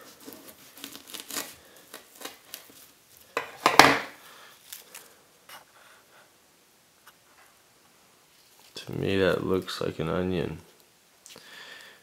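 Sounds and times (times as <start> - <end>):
knife cutting into bulb crackling: 0.0 - 2.9.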